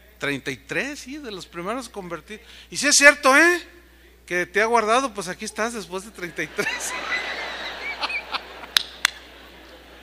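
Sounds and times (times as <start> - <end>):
crowd laughing in a hall: 6.2 - 10.0.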